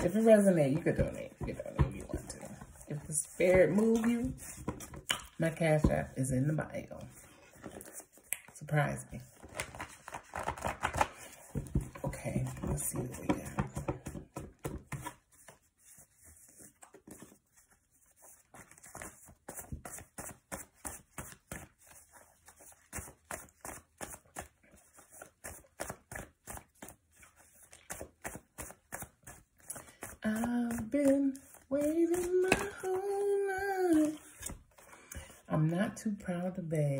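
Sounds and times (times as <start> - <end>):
cards being shuffled: 0.0 - 5.4, 9.2 - 35.5.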